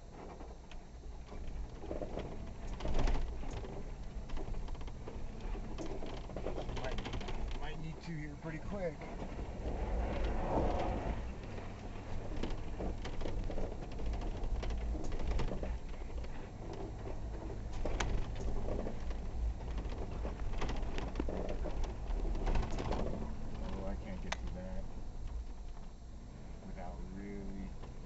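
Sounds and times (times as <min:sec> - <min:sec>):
knocks and rattles: 0:00.1 - 0:25.9
vehicle engine droning: 0:00.7 - 0:28.0.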